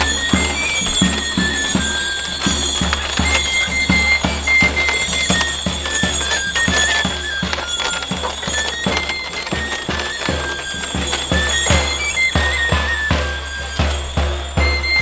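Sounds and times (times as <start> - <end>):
steady drum beats: 0.0 - 15.0
whistling pipe melody: 0.0 - 15.0.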